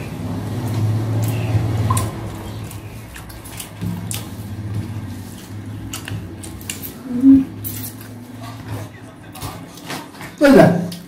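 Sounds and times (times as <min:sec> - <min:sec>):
steady low hum: 0:00.0 - 0:10.2
person humming: 0:07.0 - 0:07.6.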